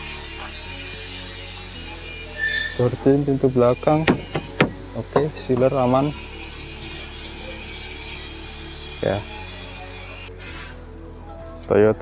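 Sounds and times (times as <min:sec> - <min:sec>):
high-pitched insect buzzing: 0:00.0 - 0:10.7
faint background music: 0:00.0 - 0:12.0.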